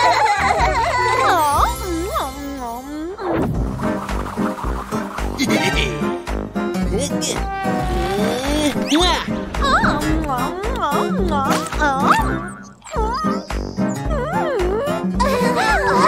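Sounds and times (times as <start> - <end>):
cartoon background music: 0.0 - 16.0
sliding cartoon vocal sounds: 7.3 - 9.0.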